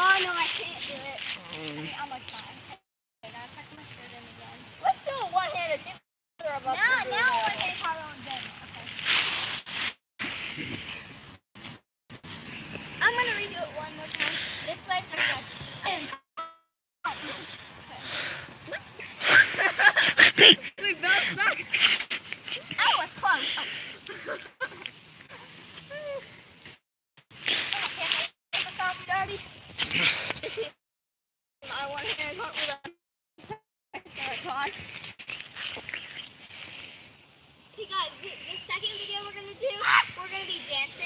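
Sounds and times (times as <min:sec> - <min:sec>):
girls talking and exclaiming: 0:00.0 - 0:09.0, 0:12.8 - 0:16.2, 0:17.1 - 0:26.4, 0:27.6 - 0:30.8, 0:31.6 - 0:34.9, 0:37.7 - 0:41.0.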